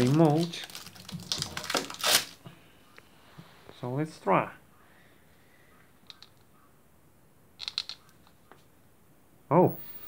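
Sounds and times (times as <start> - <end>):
sharp clicks: 7.6 - 8.4.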